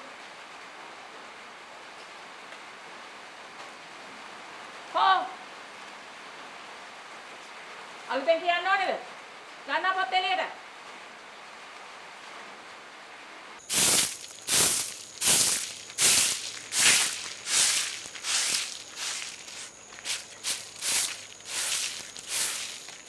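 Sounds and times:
broom sweeping bare earth: 13.6s - 23.0s.

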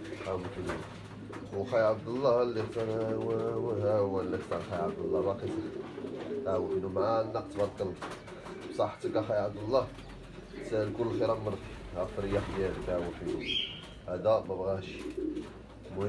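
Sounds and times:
pigeons cooing: 0.0s - 16.0s.

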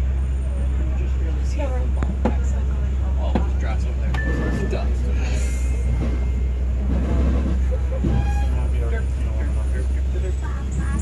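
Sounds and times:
faint voices: 0.0s - 11.0s
vehicle engine rumble: 0.0s - 11.0s.

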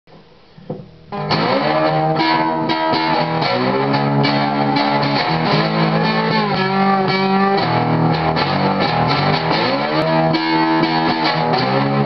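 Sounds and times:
guitar picked notes and chords: 0.6s - 12.0s.

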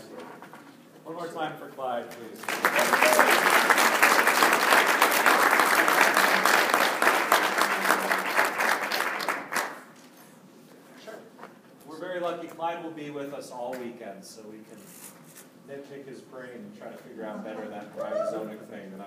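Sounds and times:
audience applauding: 2.4s - 9.9s.

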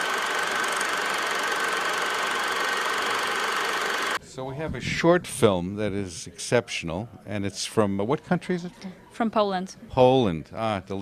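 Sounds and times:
film projector running: 0.0s - 4.2s.

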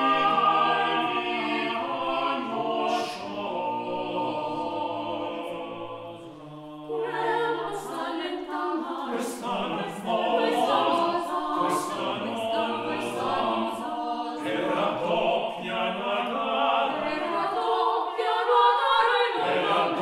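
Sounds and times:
choir singing unaccompanied: 0.0s - 20.0s.

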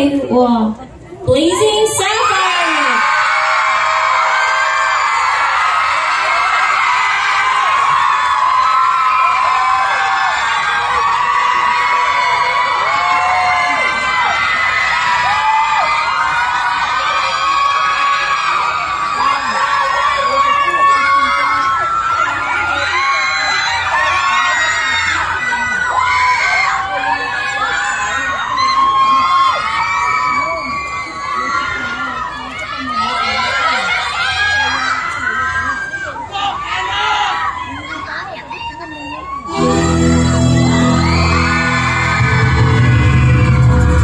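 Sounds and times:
audience cheering and whooping: 1.4s - 44.0s.

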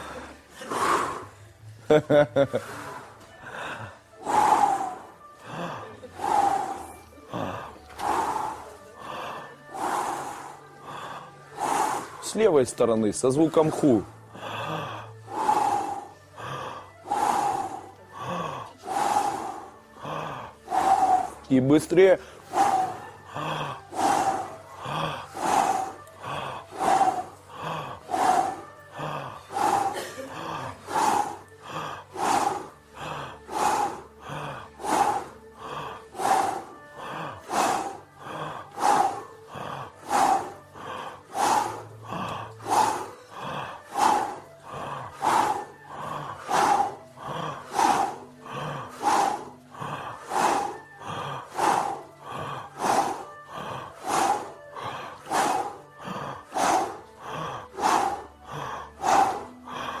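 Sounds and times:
rhythmic forced breaths: 0.0s - 60.0s.

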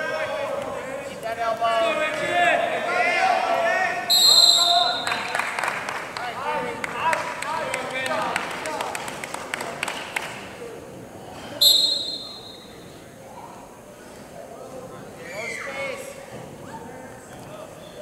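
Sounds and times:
crowd and coaches shouting: 0.0s - 5.3s
referee's whistle: 4.1s - 5.3s, 11.6s - 12.8s.

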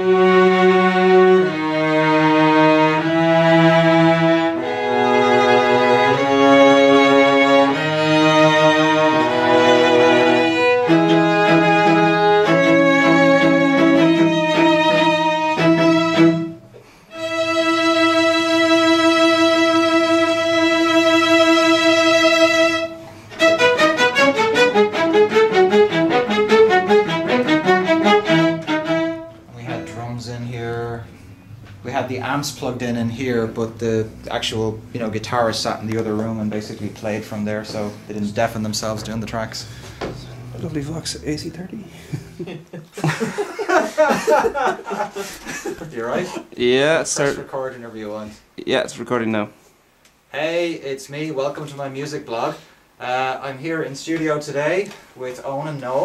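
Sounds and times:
string quartet music: 0.0s - 47.4s.

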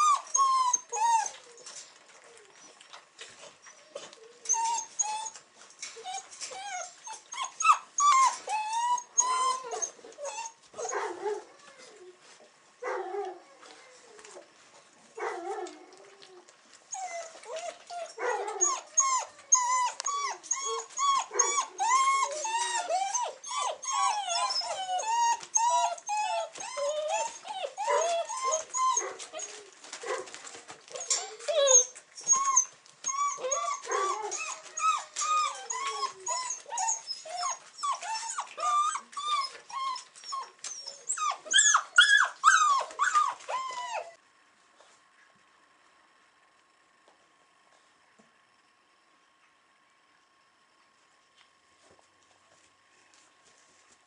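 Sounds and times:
puppies whining and squealing: 0.0s - 12.3s, 15.3s - 30.2s, 30.8s - 44.2s.

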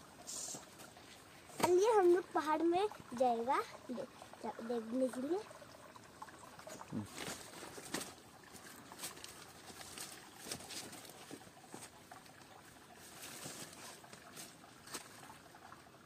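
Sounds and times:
rustling leaves and brush: 7.0s - 15.4s.

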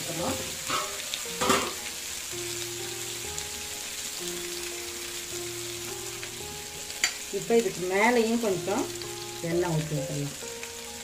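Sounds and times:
fish sizzling in oil: 0.0s - 11.0s
soft background music: 0.0s - 11.0s.

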